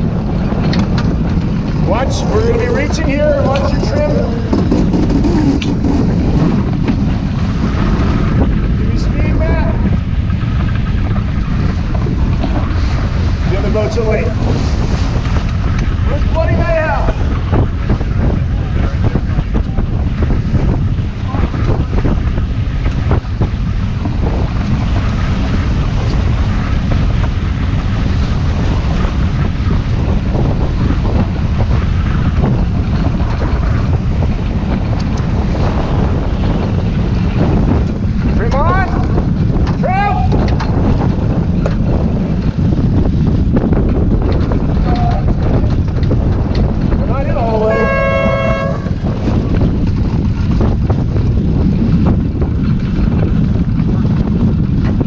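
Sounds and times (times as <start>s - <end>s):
water rushing along hull: 0.0s - 55.0s
wind buffeting microphone: 0.0s - 55.0s.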